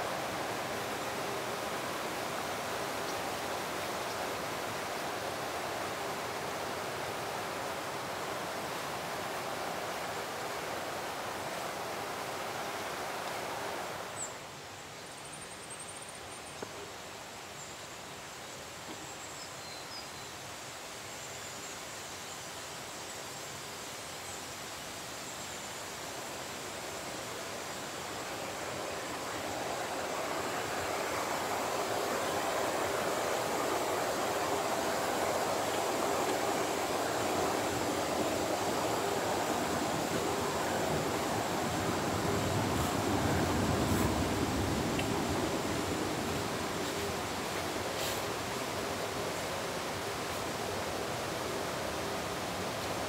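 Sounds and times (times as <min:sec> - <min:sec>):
stream rushing over rocks: 0:00.0 - 0:14.7, 0:22.6 - 0:53.0.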